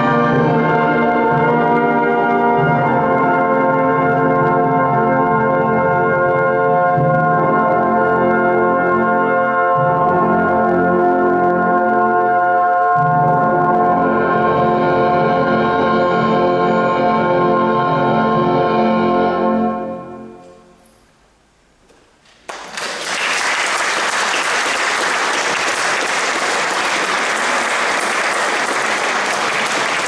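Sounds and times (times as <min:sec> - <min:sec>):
brass band playing held chords: 0:00.0 - 0:20.4, 0:23.6 - 0:30.0.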